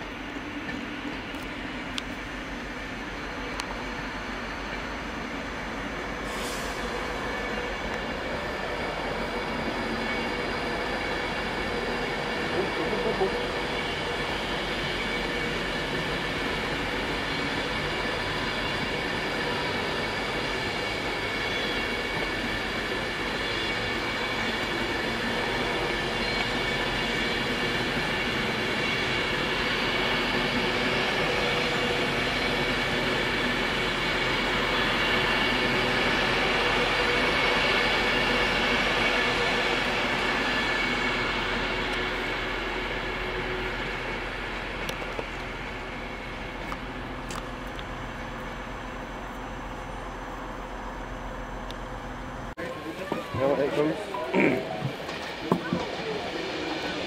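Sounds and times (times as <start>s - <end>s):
electric train running past: 0.0s - 57.0s.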